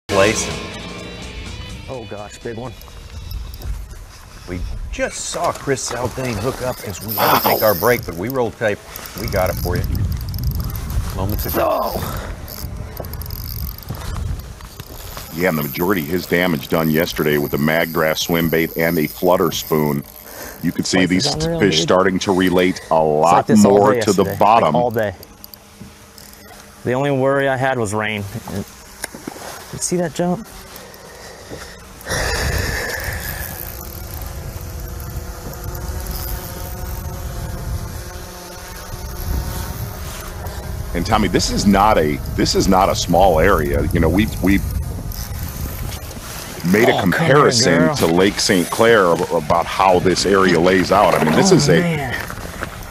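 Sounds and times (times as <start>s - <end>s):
high squeal: 0.1s - 7.8s
faint boat hum: 0.1s - 29.7s
wind rumbling on microphone: 2.6s - 15.4s, 32.1s - 47.3s.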